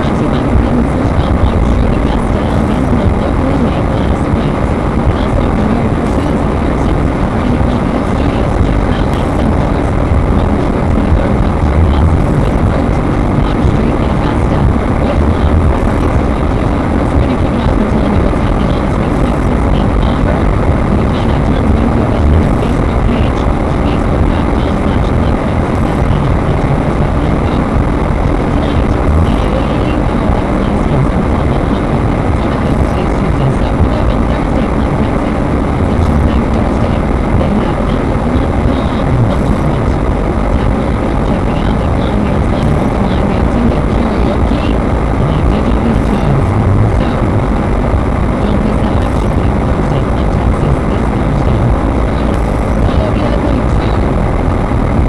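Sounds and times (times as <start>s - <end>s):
engine and tyre rumble: 46.3s - 48.2s.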